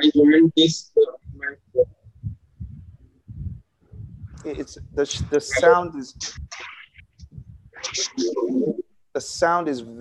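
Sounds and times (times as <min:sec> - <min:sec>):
muffled choppy voice over call: 0:02.6 - 0:08.8.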